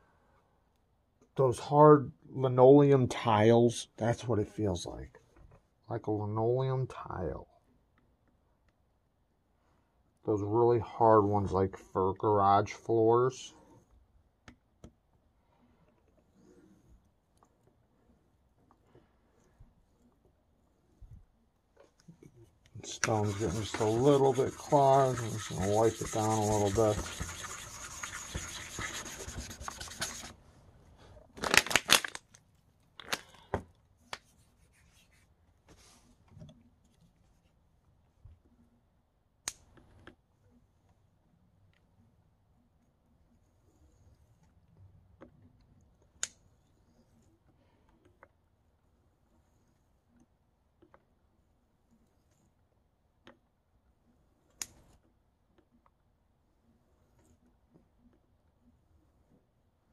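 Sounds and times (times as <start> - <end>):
rubbing on sharpening stone: 23.0 - 30.3.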